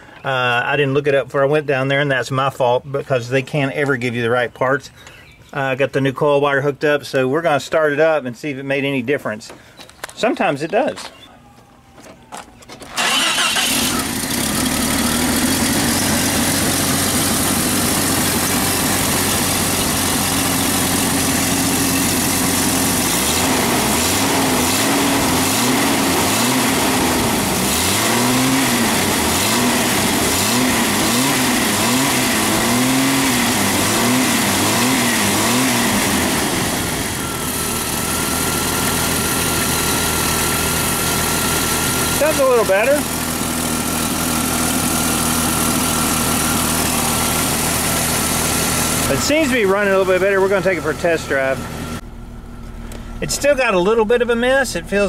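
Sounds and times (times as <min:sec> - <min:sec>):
car engine revving and idling: 0:13.0 - 0:55.0.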